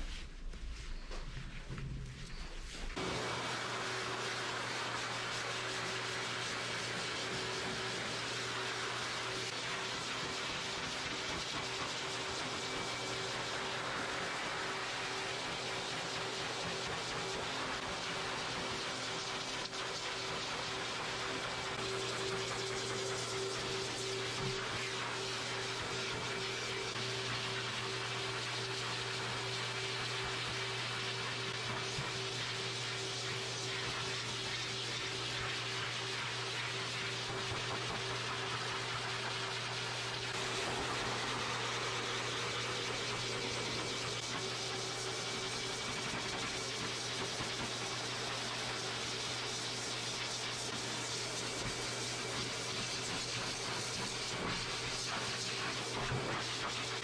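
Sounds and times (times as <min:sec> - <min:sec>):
rush of air from dryer hose: 0:00.0 - 0:57.0.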